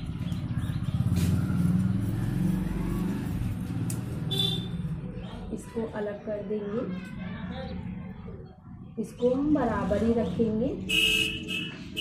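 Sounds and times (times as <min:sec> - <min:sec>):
passing vehicle engine rumble: 0:00.0 - 0:10.9.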